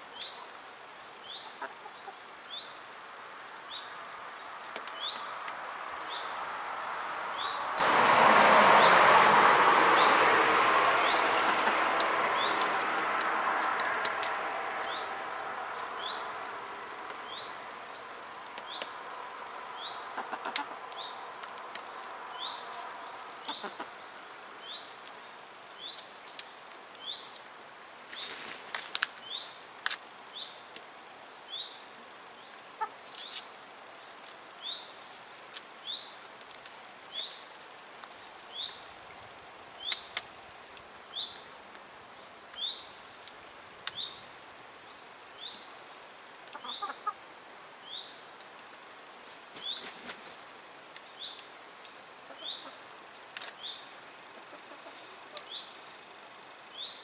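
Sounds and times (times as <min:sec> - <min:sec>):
hens pecking on wooden tray: 0:10.8 - 0:24.0
wing flutter: 0:28.0 - 0:29.2, 0:48.4 - 0:50.5.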